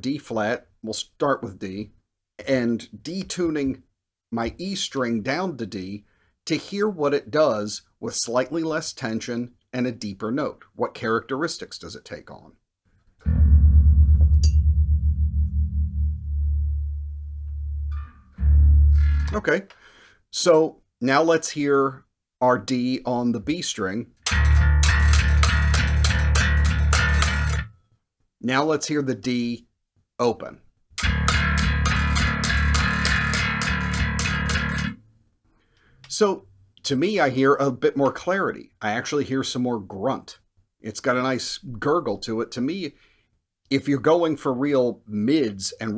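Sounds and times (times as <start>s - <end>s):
electric bass guitar notes: 13.2s - 19.6s, 24.2s - 27.7s, 31.0s - 35.0s.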